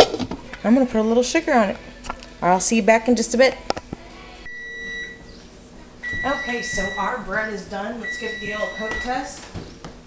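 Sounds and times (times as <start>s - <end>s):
oven timer beep: 4.5s - 5.2s, 6.0s - 7.4s, 8.0s - 9.4s.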